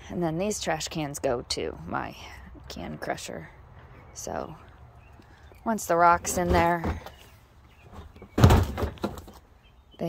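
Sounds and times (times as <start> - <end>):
trash can scraping on concrete: 6.2 - 9.4
plastic trash can thud on concrete: 8.3 - 9.4.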